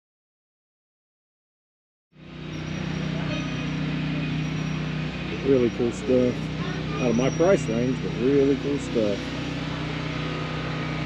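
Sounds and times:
motor humming: 0:02.2 - 0:11.0
outdoor background noise: 0:02.2 - 0:11.0.

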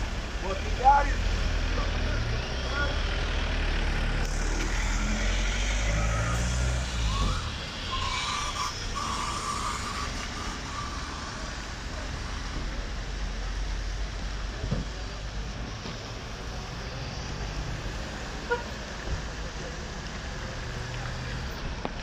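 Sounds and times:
car engines idling: 0:00.0 - 0:22.0
tyres hissing on wet road: 0:00.0 - 0:22.0.

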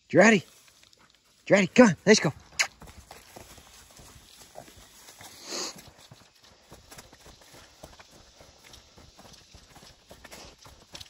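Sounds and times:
footsteps on leafy dirt trail: 0:00.0 - 0:11.0.

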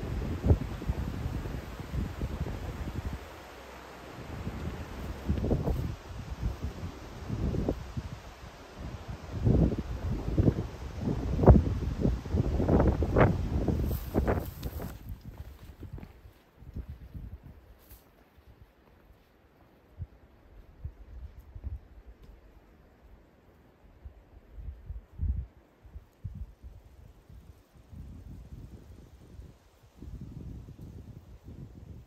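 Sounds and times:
wind buffeting microphone: 0:00.0 - 0:03.4, 0:04.1 - 0:17.8, 0:20.0 - 0:22.4, 0:24.0 - 0:32.0
leaves rustling: 0:00.0 - 0:16.6, 0:17.6 - 0:19.8.

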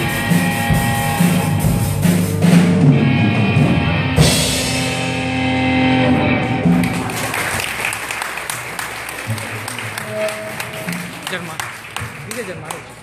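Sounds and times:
rock band final chord: 0:00.0 - 0:07.2
audience applauding: 0:06.5 - 0:13.0.

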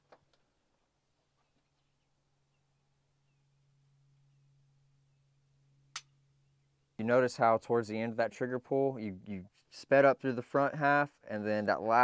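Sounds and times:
faint low hum: 0:00.1 - 0:12.0.

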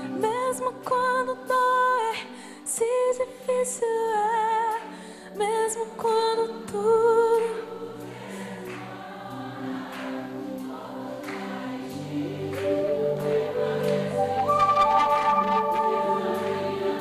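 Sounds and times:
voices singing together: 0:04.7 - 0:17.0
worship band music: 0:05.4 - 0:17.0
soft sustained chords: 0:09.6 - 0:17.0.

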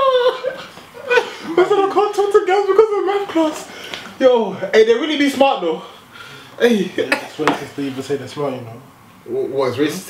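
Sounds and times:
young men laughing: 0:00.0 - 0:03.7, 0:06.7 - 0:07.7.

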